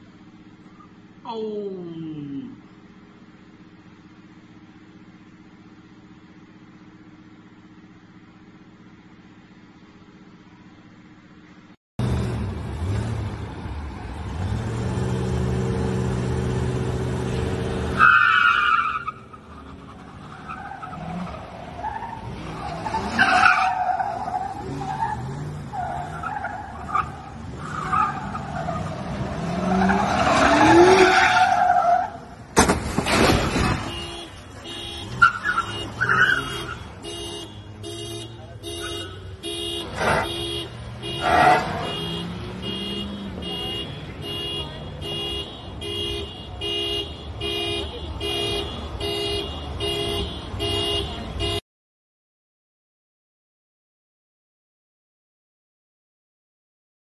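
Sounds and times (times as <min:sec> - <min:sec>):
tires squealing: 0:12.0 - 0:45.4
vehicle crash: 0:22.4 - 0:36.9.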